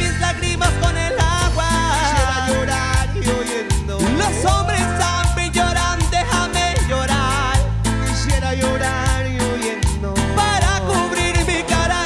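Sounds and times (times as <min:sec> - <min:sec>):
people singing: 0:00.0 - 0:07.7, 0:08.4 - 0:12.0
live latin band playing: 0:00.0 - 0:12.0.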